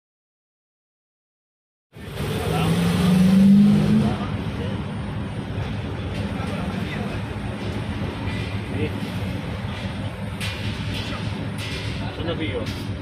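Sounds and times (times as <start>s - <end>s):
vehicle engine rising in pitch: 2.0s - 5.4s.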